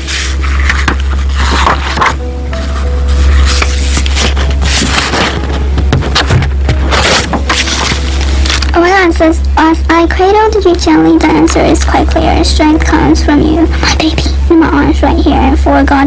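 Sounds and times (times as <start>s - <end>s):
paper rustling page turning: 0.0s - 8.8s
low hum: 0.0s - 16.0s.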